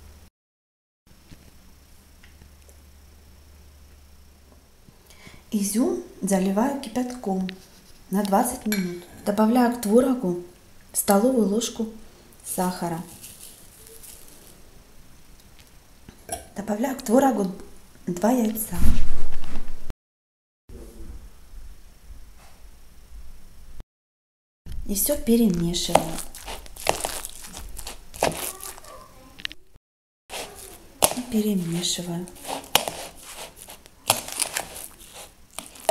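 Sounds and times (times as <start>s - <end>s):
sugar sprinkling soft rustle: 12.4s - 14.8s, 25.1s - 29.4s, 30.3s - 35.9s
spoon stirring in bowl: 25.7s - 28.9s, 30.3s - 35.9s.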